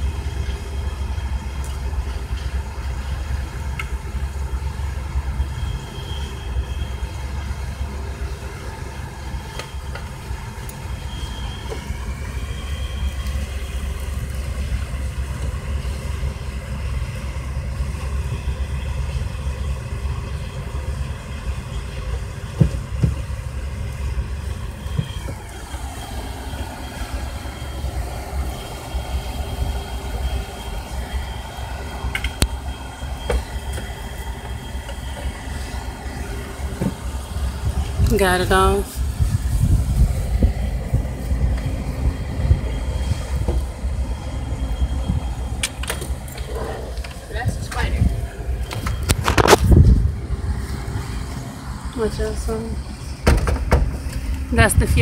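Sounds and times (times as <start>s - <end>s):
vehicle engine idling: 0.0s - 55.0s.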